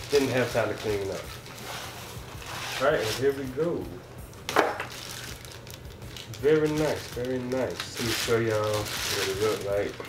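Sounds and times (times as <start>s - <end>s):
plastic and cloth bag rustling: 0.0s - 3.7s, 4.8s - 10.0s.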